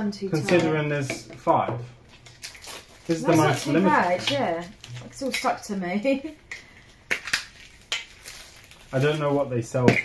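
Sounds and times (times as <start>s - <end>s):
plastic wrap crinkling: 2.0s - 10.0s.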